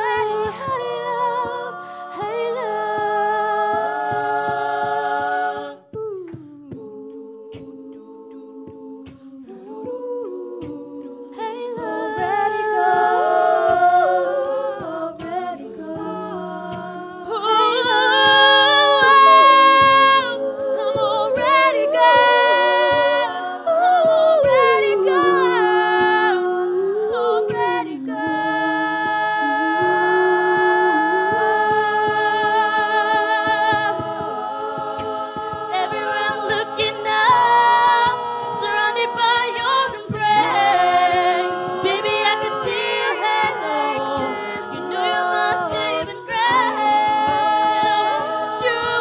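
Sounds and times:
vocal percussion beat: 0:00.0 - 0:49.0
women singing a cappella chord: 0:00.0 - 0:49.0.

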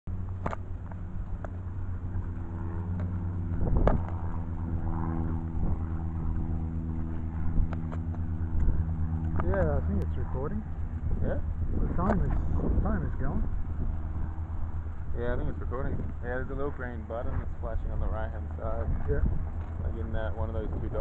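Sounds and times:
propeller engine droning: 0:00.0 - 0:21.0.

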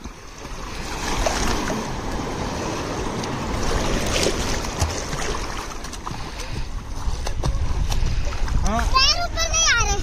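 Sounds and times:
sea water splashing: 0:00.0 - 0:10.0
wind rumble on microphone: 0:01.2 - 0:10.0.

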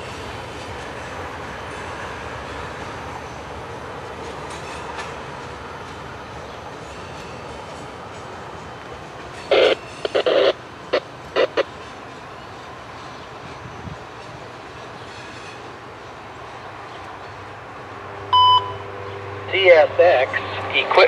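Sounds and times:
train wheels rumbling on rail: 0:00.0 - 0:18.3
radio scanner beep: 0:09.5 - 0:11.7, 0:18.4 - 0:18.9.

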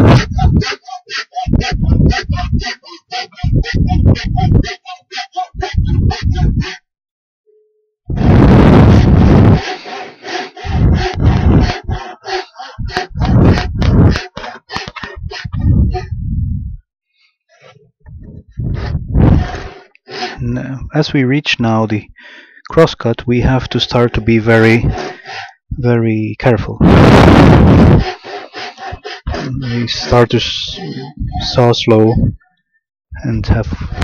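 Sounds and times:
handsaw cutting wood: 0:00.0 - 0:06.4, 0:08.2 - 0:16.0, 0:19.3 - 0:20.4, 0:23.5 - 0:25.5, 0:27.0 - 0:31.6.

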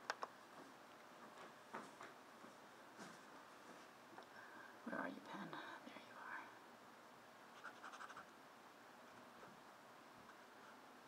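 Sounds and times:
scratchy writing strokes: 0:07.5 - 0:08.3.

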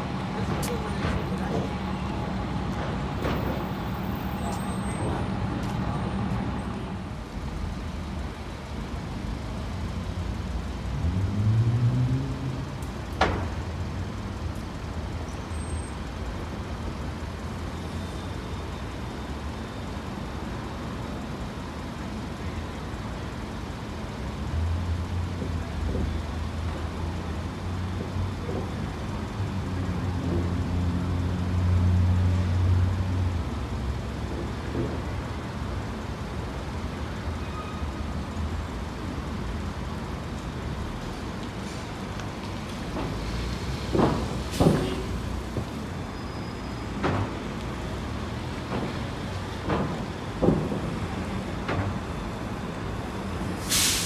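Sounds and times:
bus engine pulling away: 0:00.0 - 0:54.0
bus idling with low drone: 0:00.0 - 0:54.0
street traffic: 0:00.0 - 0:54.0.

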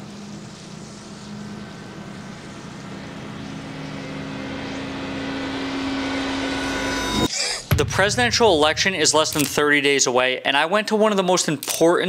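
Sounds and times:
steady engine drone: 0:00.0 - 0:09.6.

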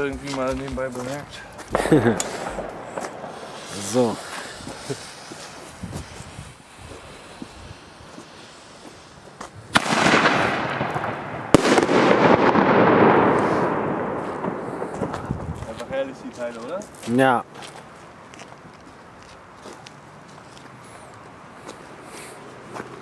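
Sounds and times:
firework fuse fizzing: 0:00.0 - 0:16.6
mortar tube firing crack: 0:01.7 - 0:04.0, 0:09.7 - 0:15.6
firework bursting bang: 0:01.7 - 0:16.2
hiss: 0:02.0 - 0:09.6
shell rising with hissing tail: 0:02.2 - 0:09.4.

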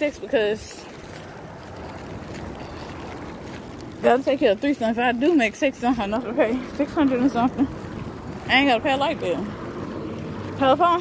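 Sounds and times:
wind on microphone: 0:00.0 - 0:11.0.

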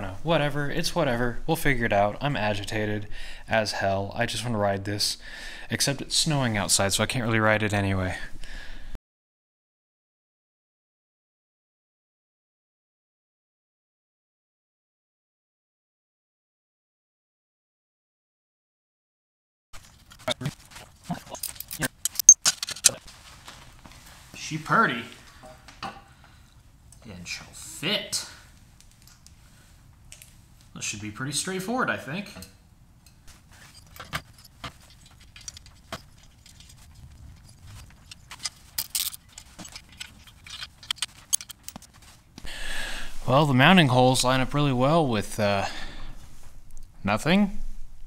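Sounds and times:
ratchet wrench clicking: 0:38.0 - 0:41.8.

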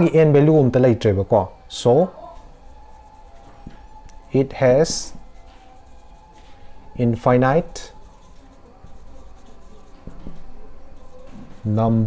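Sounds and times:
marker scratching on whiteboard: 0:02.3 - 0:12.0.

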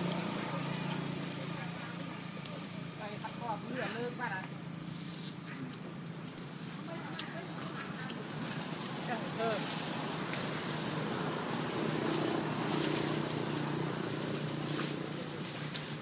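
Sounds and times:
outdoor noise: 0:00.0 - 0:16.0
rustling: 0:00.0 - 0:16.0.

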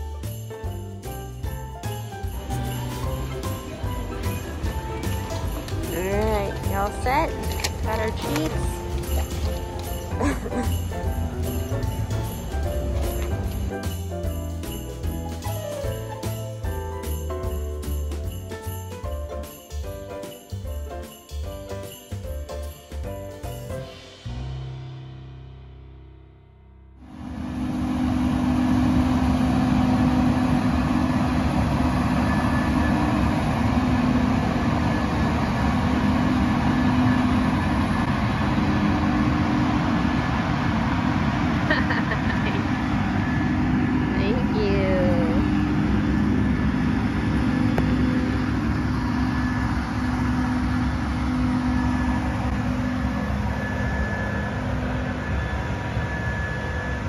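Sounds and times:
farm machine engine droning: 0:02.3 - 0:14.9, 0:27.0 - 0:57.0.

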